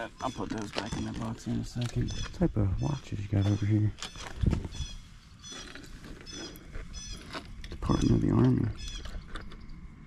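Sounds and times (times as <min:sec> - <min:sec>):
bird calling: 0:00.0 - 0:09.7.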